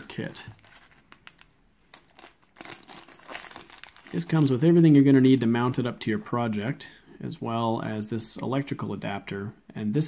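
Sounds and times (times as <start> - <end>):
metal screws rattling in bag: 0.0 - 4.5
plastic bag crinkling: 0.0 - 4.6.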